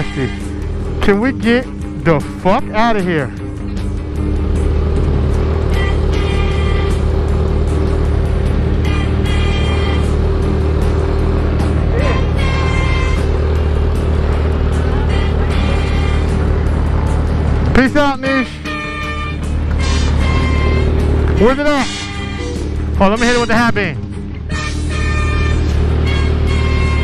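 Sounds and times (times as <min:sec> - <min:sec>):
motorcycle engine idling: 0:00.0 - 0:27.0
music playing: 0:00.0 - 0:27.0.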